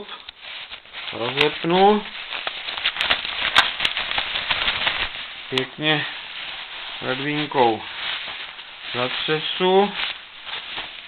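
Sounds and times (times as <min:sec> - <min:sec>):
jacket fabric rustling: 0:00.0 - 0:11.0.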